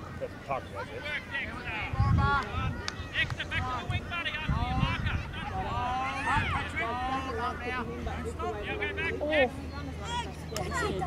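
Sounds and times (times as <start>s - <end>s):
people calling out and talking: 0.0s - 11.0s.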